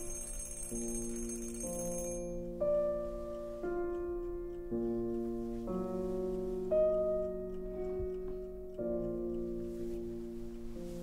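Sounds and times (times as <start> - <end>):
alarm clock ticking: 0.0 - 5.3, 6.6 - 11.0
soft keyboard chords: 0.0 - 11.0.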